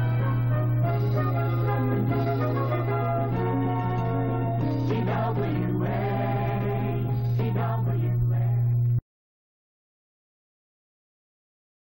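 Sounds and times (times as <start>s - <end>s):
choir singing sustained chords: 0.0s - 8.7s
steady low hum: 0.0s - 9.0s.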